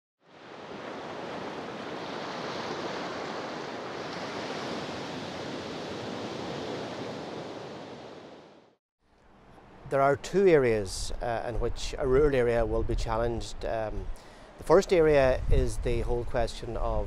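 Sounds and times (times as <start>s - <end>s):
ocean surf washing: 0.2s - 8.8s.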